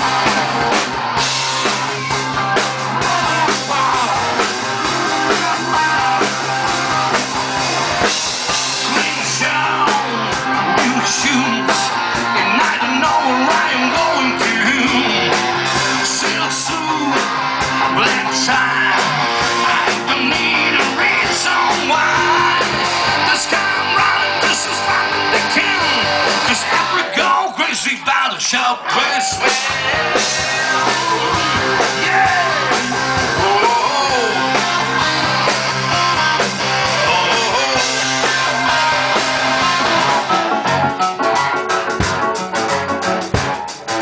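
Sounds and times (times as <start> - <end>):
drum kit: 0.0 - 27.5, 29.1 - 44.0
electric guitar: 0.0 - 44.0
man singing into a microphone: 3.0 - 4.4, 8.7 - 35.0, 36.9 - 39.1.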